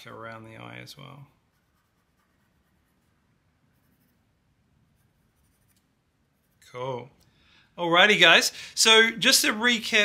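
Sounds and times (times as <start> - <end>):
pencil scratching on paper: 1.4 - 6.7.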